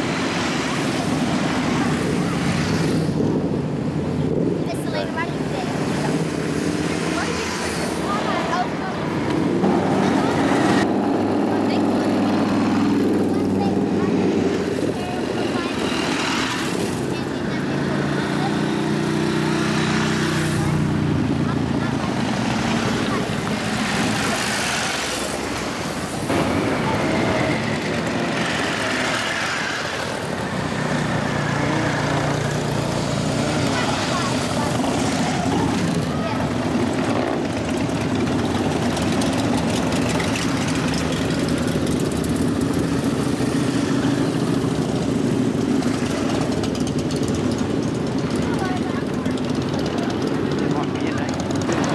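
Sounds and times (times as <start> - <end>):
motorcycles riding past: 0.0 - 51.9.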